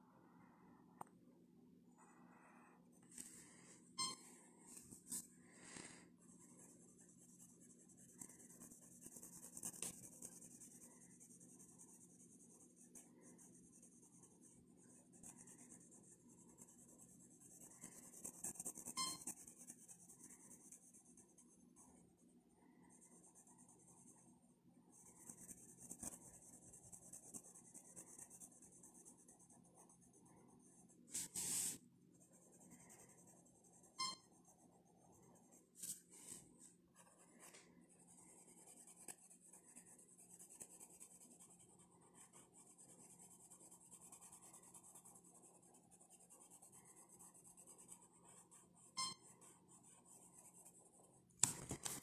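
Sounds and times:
pencil scratching on paper: 0:04.8 - 0:24.3, 0:24.9 - 0:52.0.

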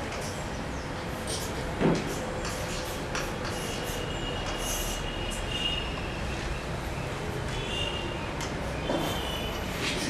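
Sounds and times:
chalk scraping on blackboard: 0:01.1 - 0:05.7, 0:09.0 - 0:10.0.

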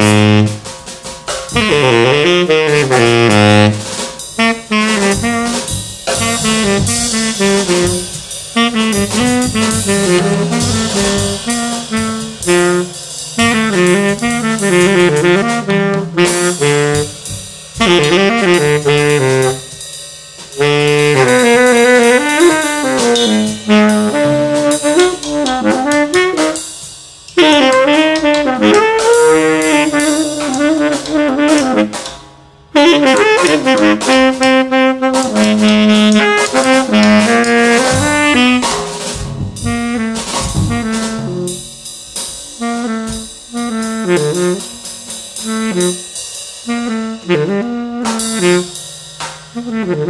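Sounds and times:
tenor saxophone playing jazz: 0:00.0 - 0:00.8, 0:01.4 - 0:19.9, 0:20.5 - 0:50.0
drum kit with cymbals: 0:00.0 - 0:50.0.

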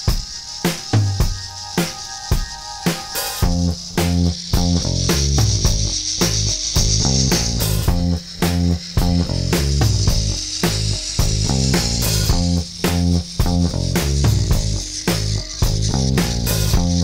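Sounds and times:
band music with drum beat: 0:00.0 - 0:17.0
cymbals hissing: 0:00.0 - 0:17.0
bass line: 0:03.4 - 0:17.0.

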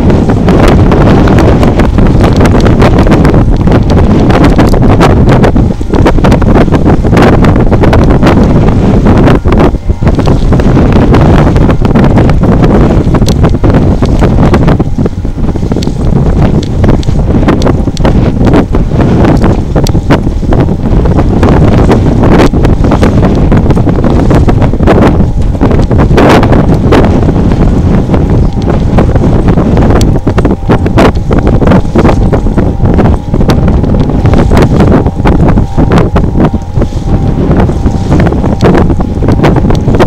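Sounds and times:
wind buffeting microphone: 0:00.0 - 0:40.0.

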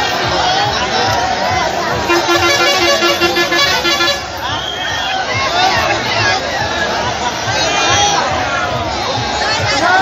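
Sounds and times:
crowd noise: 0:00.0 - 0:10.0
truck horn blasts: 0:02.1 - 0:04.5.

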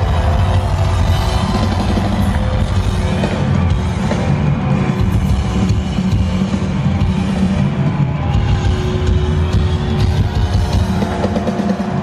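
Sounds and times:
loud rock band: 0:00.0 - 0:12.0.

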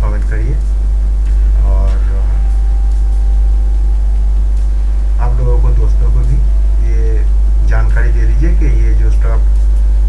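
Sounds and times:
light hiss: 0:00.0 - 0:10.0
loud steady low hum: 0:00.0 - 0:10.0.

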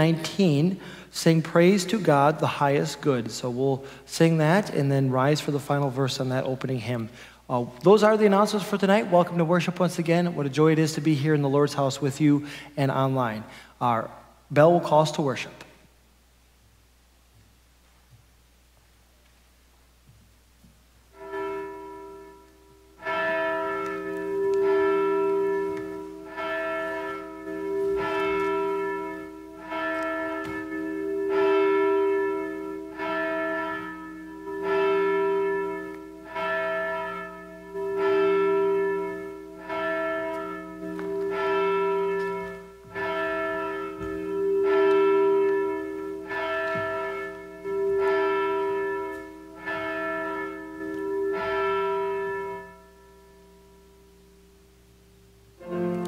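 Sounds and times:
church bell ringing: 0:00.0 - 0:13.7, 0:21.1 - 0:56.0.

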